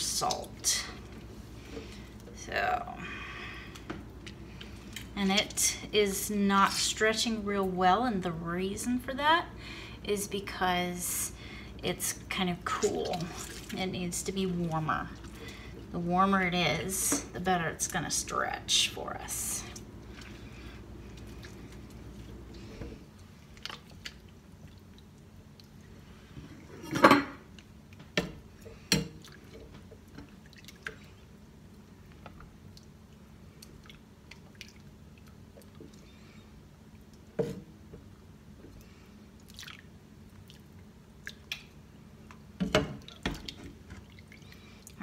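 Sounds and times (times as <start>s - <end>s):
cheese curd squishing: 12.6s - 15.9s, 19.7s - 26.4s, 27.5s - 37.4s, 38.5s - 45.0s
water dripping and splashing: 12.7s - 15.9s, 23.2s - 25.8s, 28.9s - 31.2s, 32.2s - 36.2s, 38.8s - 45.0s.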